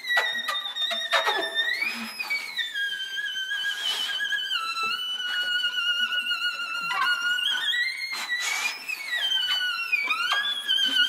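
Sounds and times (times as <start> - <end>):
scratchy violin rasp: 0.0 - 11.0.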